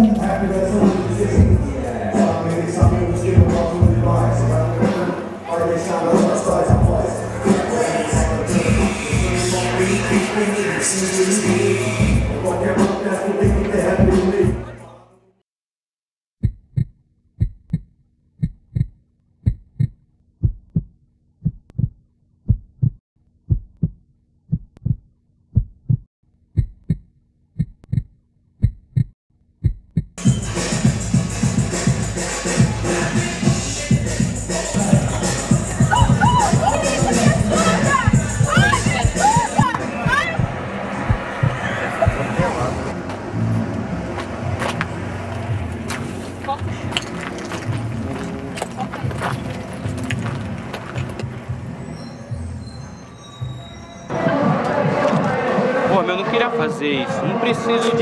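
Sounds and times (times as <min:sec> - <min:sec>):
heartbeat thumps: 0:16.4 - 0:30.2, 0:33.9 - 0:42.7
low rumble: 0:33.9 - 0:45.9
motor vehicle running: 0:34.3 - 0:52.8.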